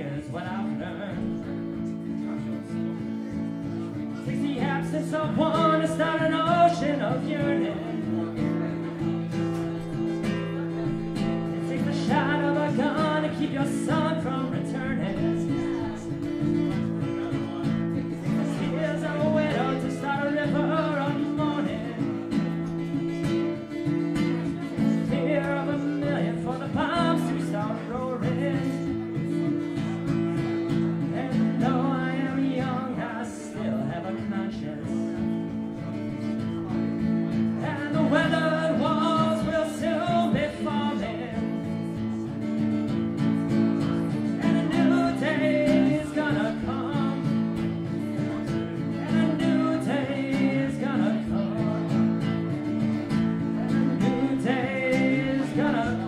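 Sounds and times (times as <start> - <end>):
man singing: 0.0 - 56.0
strummed acoustic guitar: 0.0 - 56.0.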